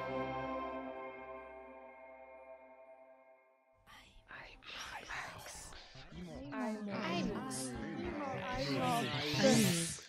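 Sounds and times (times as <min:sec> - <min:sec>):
ambient music chord: 0:00.0 - 0:03.8
whispering voices: 0:03.9 - 0:10.0.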